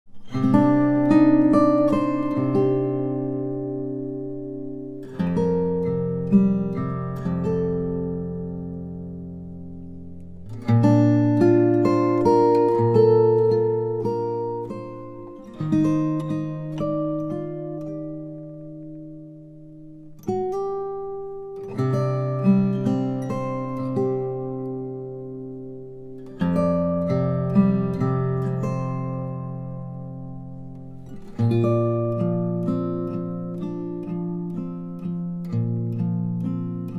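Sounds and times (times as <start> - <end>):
fingerstyle acoustic guitar: 0.1 - 36.9.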